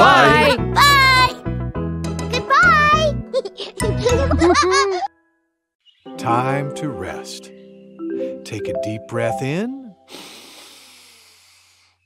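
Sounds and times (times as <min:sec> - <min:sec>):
person breathing in deeply: 0:10.1 - 0:12.0.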